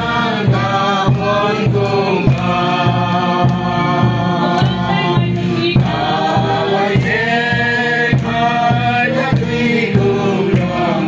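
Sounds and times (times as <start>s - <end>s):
group singing a hymn: 0.0s - 11.0s
steady beat: 0.0s - 11.0s.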